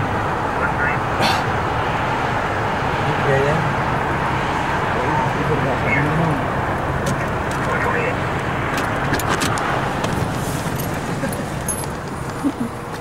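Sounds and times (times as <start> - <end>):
vehicles idling and passing: 0.0 - 13.0.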